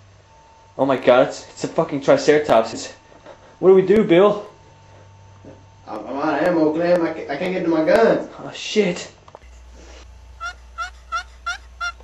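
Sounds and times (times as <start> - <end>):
steady low hum: 0.0 - 12.0
fowl calling in short notes: 10.4 - 12.0.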